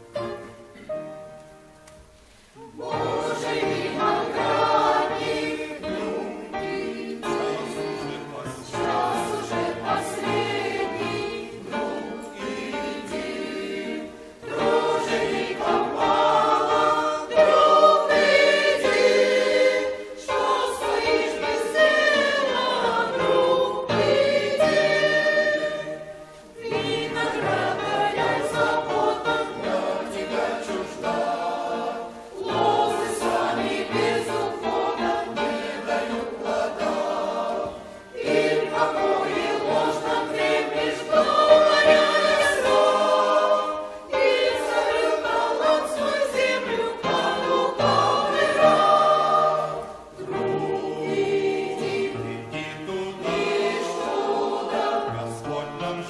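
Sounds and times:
choir singing a hymn: 0.0s - 1.8s, 2.5s - 56.0s.

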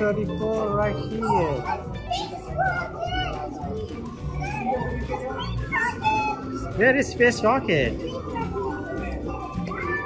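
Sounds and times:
background music: 0.0s - 10.0s
children chattering: 0.0s - 10.0s.

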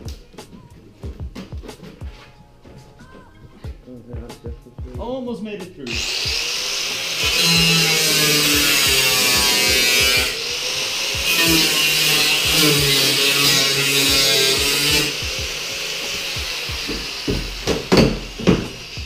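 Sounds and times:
angle grinder cutting metal: 5.9s - 19.0s
sharp knocks: 16.7s - 18.8s.

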